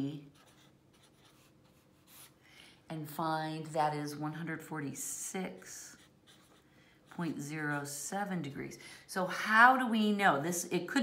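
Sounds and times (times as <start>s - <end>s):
marker writing on paper: 0.2s - 2.4s, 5.8s - 7.3s.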